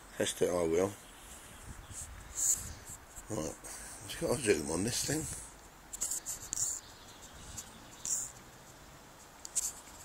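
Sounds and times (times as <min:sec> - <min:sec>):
fingers rubbing and tapping phone: 0:05.9 - 0:08.4, 0:09.5 - 0:10.0.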